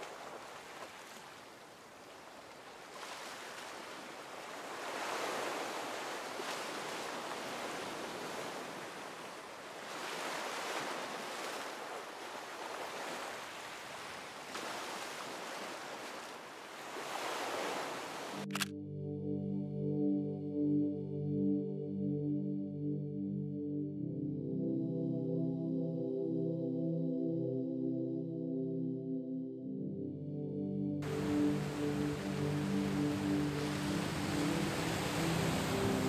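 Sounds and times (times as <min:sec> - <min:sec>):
ocean surf on rocky shore: 0:00.0 - 0:18.5, 0:31.0 - 0:36.0
sharp click: 0:18.4 - 0:18.7
music: 0:18.6 - 0:36.0.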